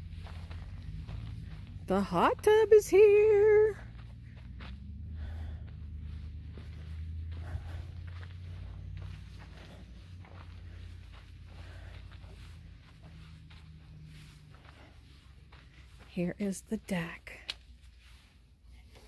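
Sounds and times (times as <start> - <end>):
low rumble: 0.0 - 18.6
footsteps on dirt: 0.0 - 19.0.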